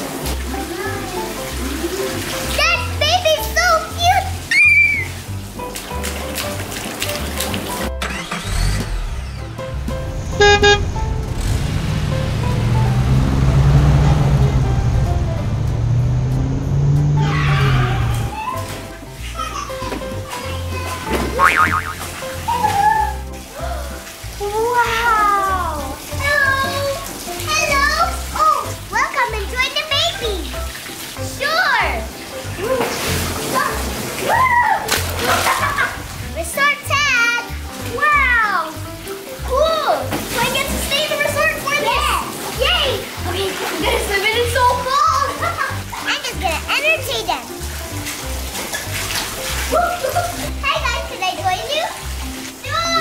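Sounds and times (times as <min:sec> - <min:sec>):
background music: 0:00.0 - 0:53.0
water splashing and spraying: 0:00.0 - 0:53.0.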